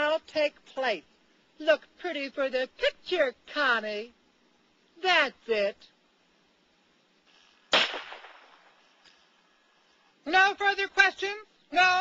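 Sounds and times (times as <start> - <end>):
gunshot: 7.7 - 8.9.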